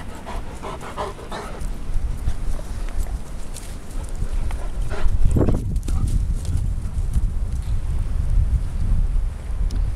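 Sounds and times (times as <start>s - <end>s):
dogs playing: 0.0s - 6.6s
wind rumbling on microphone: 0.0s - 9.9s.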